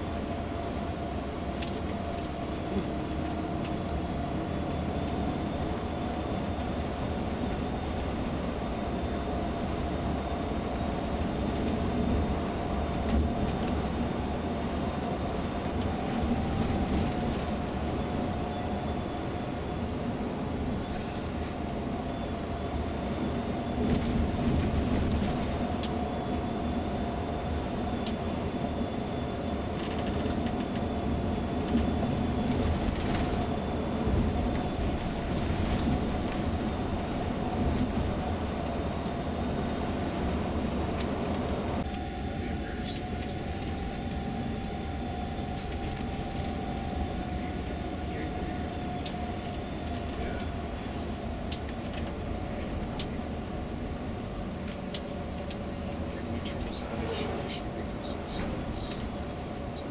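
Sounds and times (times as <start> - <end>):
coach engine and tyre rumble: 0.0 - 59.9
faint steady whine: 2.3 - 59.9.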